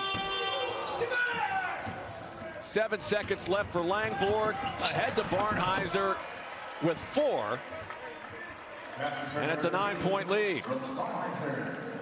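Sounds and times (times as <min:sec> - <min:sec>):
shoe squeaks on court: 0:00.0 - 0:02.1
crowd noise: 0:00.0 - 0:12.0.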